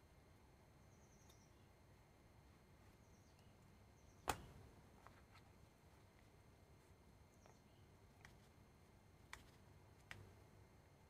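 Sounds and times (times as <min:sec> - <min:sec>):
faint high chirps: 0:00.8 - 0:01.8.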